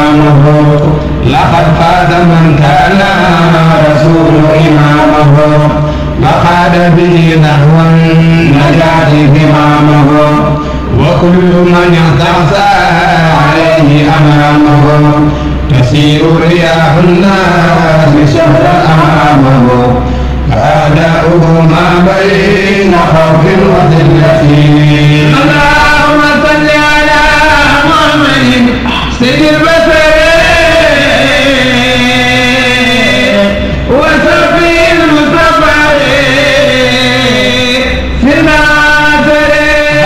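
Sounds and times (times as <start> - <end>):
man chanting: 0.0 - 40.0.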